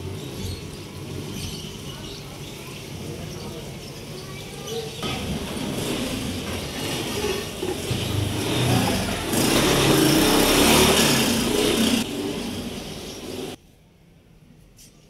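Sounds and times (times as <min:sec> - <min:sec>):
vehicle engine passing by: 0:05.0 - 0:13.6.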